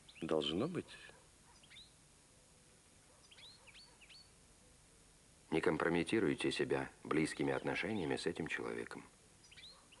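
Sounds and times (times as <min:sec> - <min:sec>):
faint bird chirps: 0:00.0 - 0:02.0, 0:03.0 - 0:04.8, 0:09.4 - 0:10.0.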